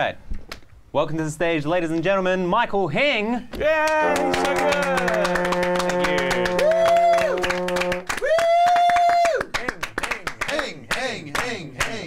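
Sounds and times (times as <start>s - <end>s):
people cheering and whooping: 3.6s - 9.5s
group clapping: 3.6s - 12.0s
sustained musical note: 3.9s - 8.1s.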